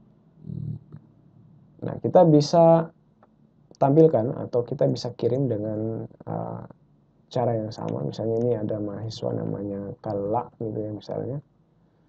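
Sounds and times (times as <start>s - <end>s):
low hum-like voiced sound: 0.4s - 1.0s, 1.8s - 2.9s, 3.8s - 6.7s, 7.3s - 11.4s
person speaking: 0.5s - 1.0s, 1.8s - 2.9s, 3.7s - 6.7s, 7.3s - 11.4s.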